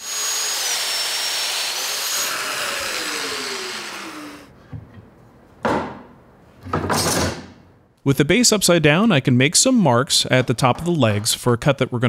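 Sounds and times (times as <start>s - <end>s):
power joiner motor whining: 0.0s - 4.5s.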